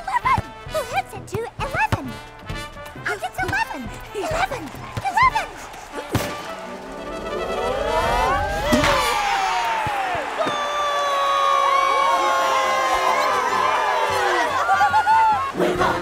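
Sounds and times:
crowd cheering: 3.1 - 16.0.

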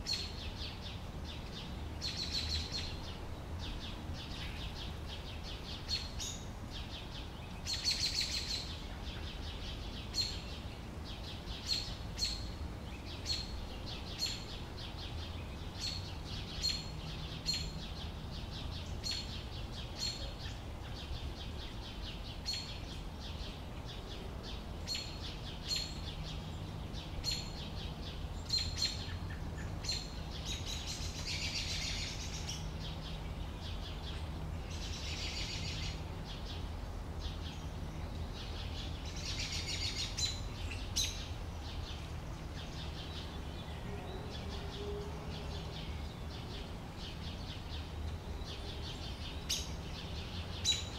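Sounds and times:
sparrows chirping: 0.0 - 50.9.

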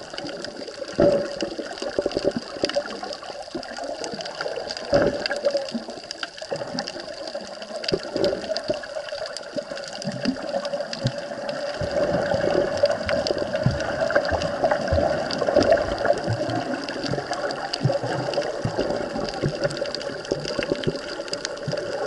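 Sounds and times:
underwater water wash: 0.0 - 22.0.

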